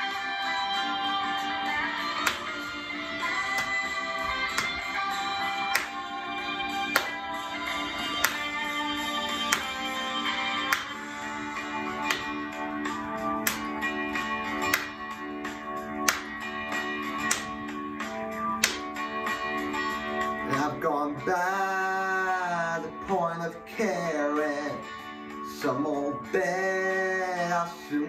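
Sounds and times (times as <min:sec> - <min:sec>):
sustained guitar chords: 0:00.0 - 0:27.5
rock backing track: 0:00.0 - 0:27.8.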